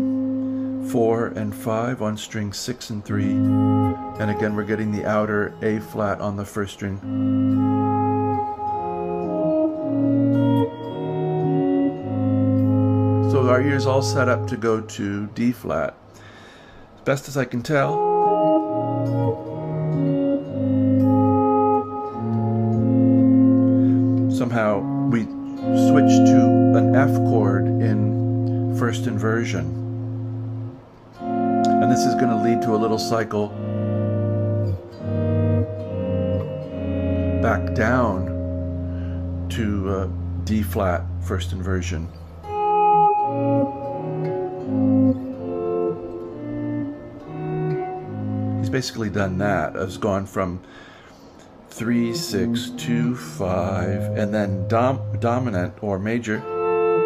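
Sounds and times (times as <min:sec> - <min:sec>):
electric guitar chords: 0:00.0 - 0:02.2, 0:03.0 - 0:15.4, 0:17.7 - 0:57.0.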